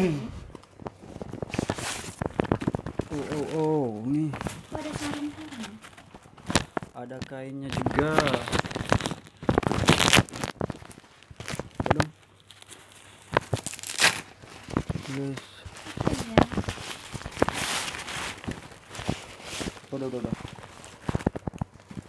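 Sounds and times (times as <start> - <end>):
fabric and plastic wrapping rustling: 0.0 - 22.0.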